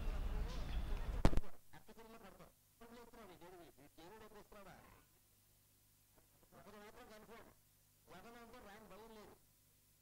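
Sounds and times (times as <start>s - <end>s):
faint people talking: 0.0s - 5.2s.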